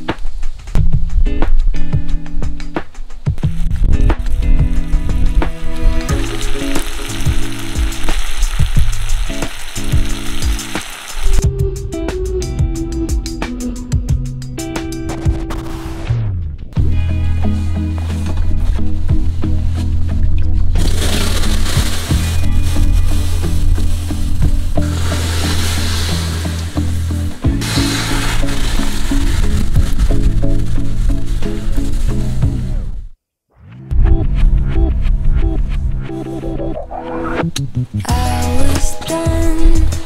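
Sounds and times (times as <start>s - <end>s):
background music: 0.8s - 10.8s, 11.4s - 33.0s, 33.7s - 40.0s
water hissing on hot charcoal: 6.0s - 11.4s, 20.8s - 32.7s
food sizzling in a skillet: 6.1s - 11.4s, 20.9s - 32.3s.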